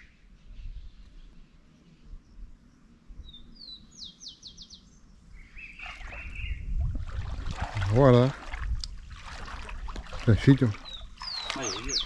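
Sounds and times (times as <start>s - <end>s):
songbird calling: 0.0s - 6.8s, 10.4s - 12.0s.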